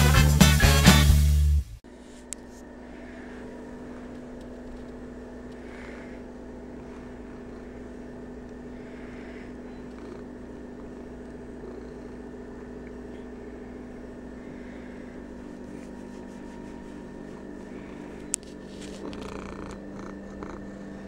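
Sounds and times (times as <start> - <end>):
steady low hum: 1.2 - 21.0
cat purring: 3.1 - 21.0
camera rustling against fur: 15.3 - 19.6.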